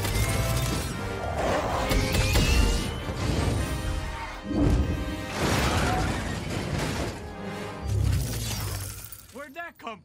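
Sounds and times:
crashing shattering debris: 5.2 - 7.3.

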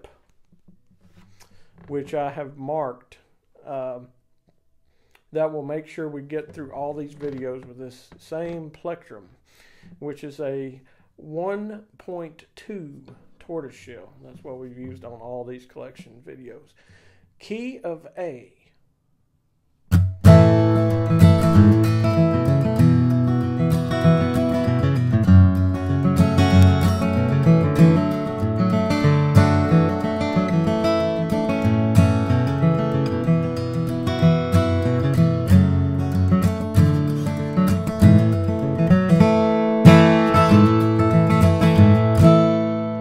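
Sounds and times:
acoustic guitar strummed and picked: 19.9 - 43.0.

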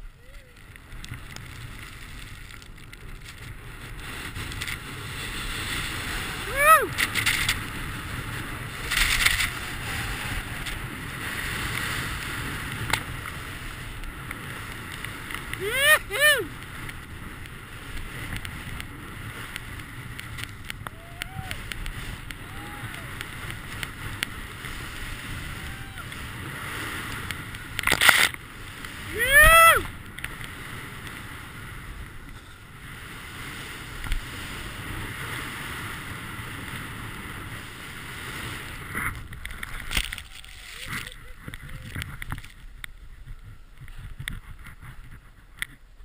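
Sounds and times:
wind and snow rushing: 0.0 - 45.8
person whooping: 0.2 - 0.6, 6.1 - 7.0, 9.5 - 10.9, 15.6 - 16.6, 20.9 - 21.7, 22.3 - 23.2, 25.4 - 26.2, 29.0 - 29.9, 40.1 - 41.9
distant whoops: 6.2 - 7.1, 9.4 - 10.9, 15.6 - 16.6, 20.8 - 23.4, 25.4 - 26.3, 29.0 - 30.0, 40.0 - 41.9.

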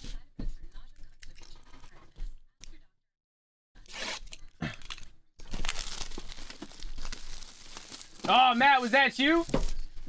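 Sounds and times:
plastic wrap crinkling: 3.9 - 10.0.

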